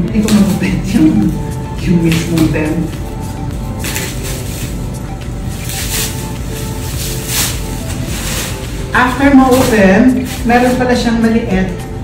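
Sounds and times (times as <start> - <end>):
background music: 0.0 - 12.0
scissors cutting plastic wrap: 0.2 - 11.0.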